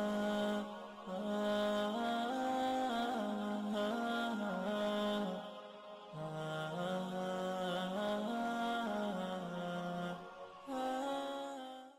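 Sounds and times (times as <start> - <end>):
wordless chant-like vocal music: 0.0 - 11.9.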